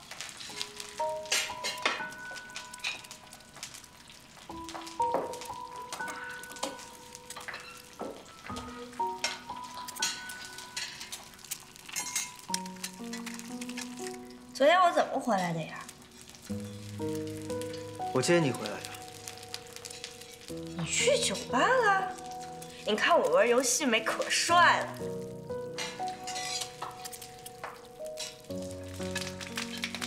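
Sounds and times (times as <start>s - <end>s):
egg sizzling in a frying pan: 0.0s - 30.0s
soft background music: 0.0s - 30.0s
metal spatula clinking: 9.2s - 13.9s, 25.8s - 27.3s.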